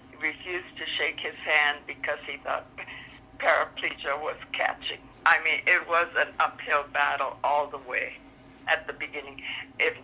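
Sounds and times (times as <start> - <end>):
woman talking phone-like voice: 0.2 - 10.0.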